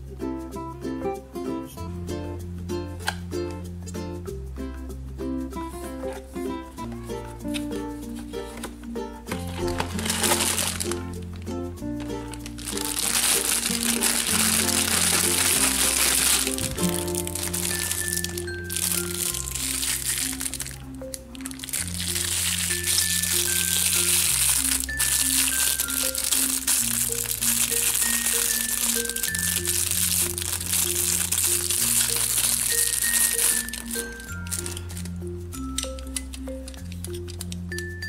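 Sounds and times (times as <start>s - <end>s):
background music: 0.0s - 38.0s
plastic bag crinkling: 9.3s - 11.3s, 12.0s - 35.2s, 35.9s - 37.6s.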